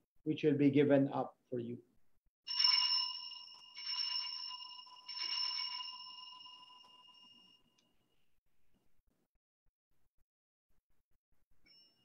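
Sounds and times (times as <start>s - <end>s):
altar bell ringing: 2.5s - 7.7s.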